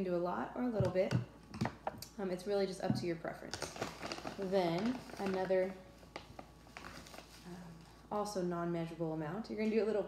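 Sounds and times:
plastic bag rustling: 3.4s - 8.0s.

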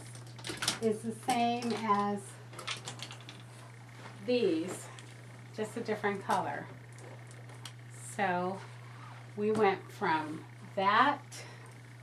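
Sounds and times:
low hum: 0.0s - 12.0s.

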